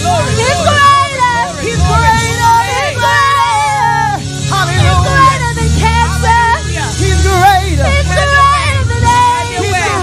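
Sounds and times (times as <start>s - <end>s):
amplified keyboard: 0.0s - 10.0s
gospel singing: 0.0s - 10.0s
low bass: 0.0s - 10.0s.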